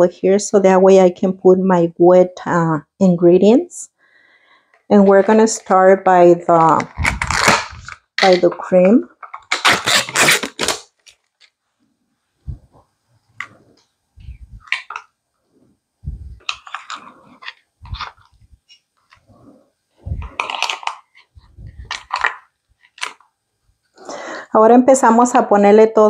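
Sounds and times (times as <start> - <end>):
plastic tub crinkling: 4.9 - 11.6, 14.6 - 15.1, 16.4 - 19.2, 20.2 - 23.3.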